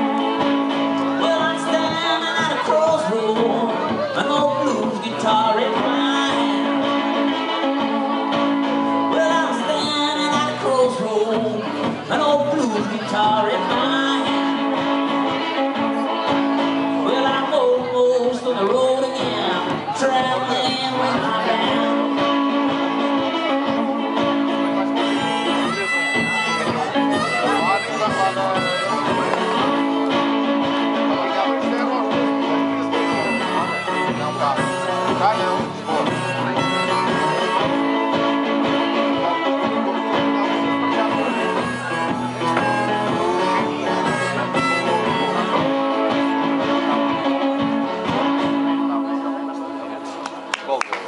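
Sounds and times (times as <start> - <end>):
harmonica notes: 0.0 - 50.2
acoustic guitar strumming: 0.0 - 50.5.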